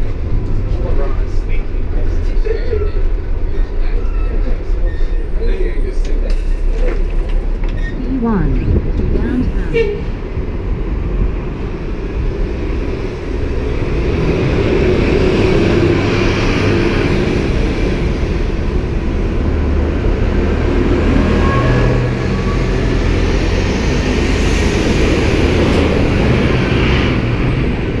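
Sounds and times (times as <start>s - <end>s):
bus engine running under load: 0.0s - 28.0s.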